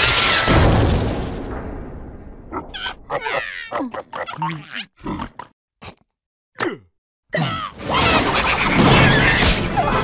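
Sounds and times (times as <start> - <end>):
cartoon grunts and squeaks: 2.5 - 5.5, 6.6 - 10.0
cartoon falling squeal: 7.8 - 10.0.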